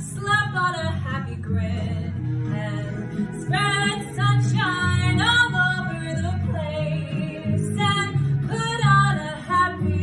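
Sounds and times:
backing track with guitar and bass: 0.0 - 10.0
woman singing: 0.0 - 10.0.

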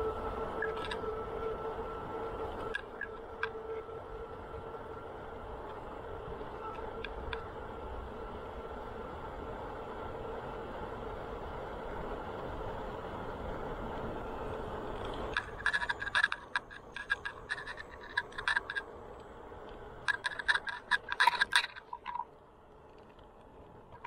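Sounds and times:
bicycle clicking and rattling: 0.0 - 8.6, 14.0 - 24.0
bicycle tyres rolling on pavement: 0.0 - 24.0
wind: 0.0 - 24.0.

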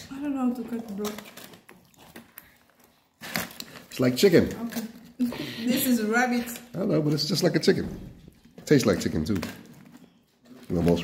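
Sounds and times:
aluminium foil crackle: 0.0 - 7.4.

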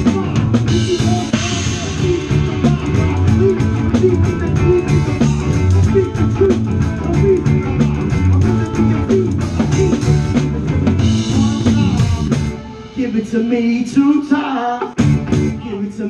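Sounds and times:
drum kit with cymbals: 0.0 - 16.0
electric guitars: 0.0 - 16.0.

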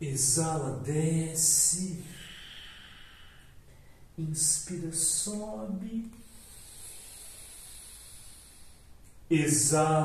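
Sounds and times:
slow inhalation through nose: 2.1 - 4.1, 6.2 - 9.0.

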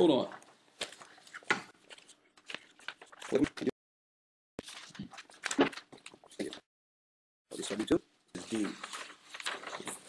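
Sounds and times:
paper sheets rustling: 0.4 - 3.7, 4.6 - 6.6, 7.6 - 10.0.

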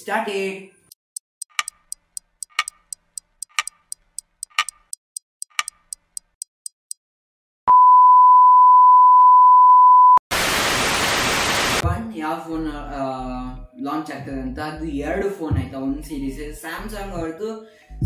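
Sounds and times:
clock ticking: 0.9 - 7.0
tv static hiss: 10.3 - 11.8.

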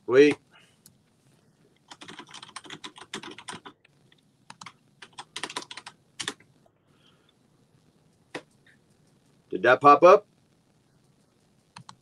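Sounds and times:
computer keyboard typing: 1.9 - 3.9, 4.5 - 6.5, 11.7 - 12.0.

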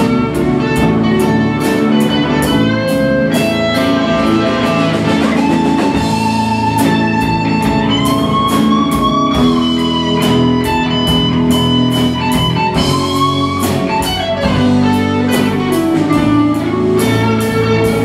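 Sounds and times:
drum kit beat: 0.0 - 18.0
electric guitars: 0.0 - 18.0
keyboard: 0.0 - 18.0.

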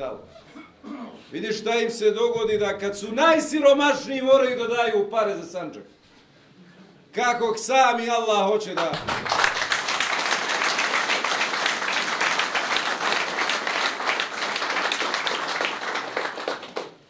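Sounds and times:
audience applauding: 8.8 - 17.0.

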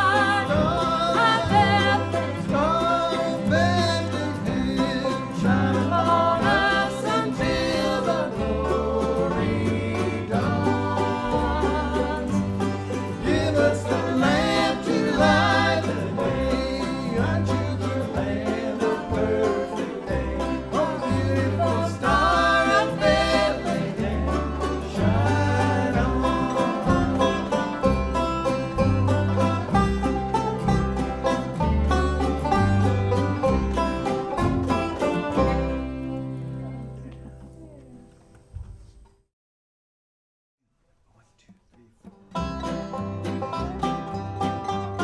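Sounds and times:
person singing: 0.0 - 27.7
banjo: 0.0 - 37.8, 42.0 - 45.0
upright bass: 0.0 - 38.0, 41.8 - 45.0
bluegrass band playing: 0.0 - 38.1, 42.0 - 45.0.

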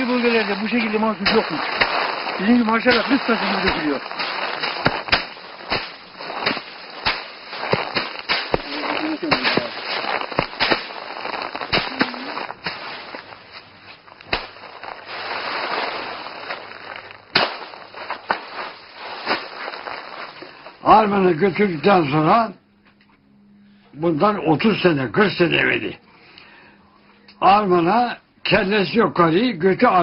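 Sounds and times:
rice bundles whacked: 0.0 - 20.9
straw rustling: 0.0 - 22.1.

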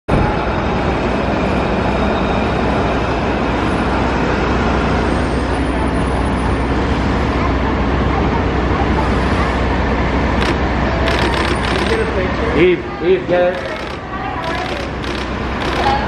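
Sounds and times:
city street traffic: 0.1 - 16.0.

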